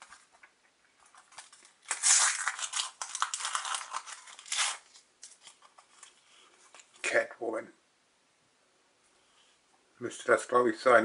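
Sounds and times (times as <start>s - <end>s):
sticker packet wrapper crackling: 1.0s - 6.2s.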